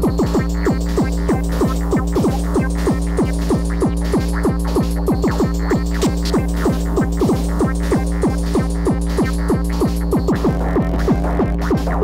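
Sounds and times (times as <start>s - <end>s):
fast electronic dance music: 0.0s - 12.0s
low droning bass: 0.0s - 12.0s.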